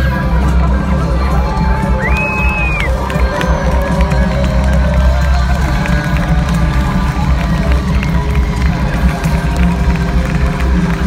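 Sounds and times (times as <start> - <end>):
live concert bass-heavy beat: 0.0 - 11.0
crowd cheering: 0.1 - 11.0.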